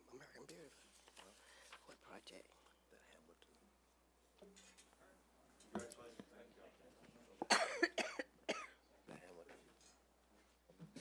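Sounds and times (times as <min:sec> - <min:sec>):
person coughing: 0:07.5 - 0:08.8.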